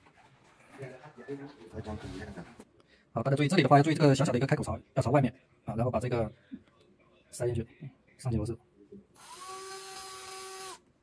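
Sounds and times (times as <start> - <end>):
electric screwdriver whine: 9.2 - 10.8.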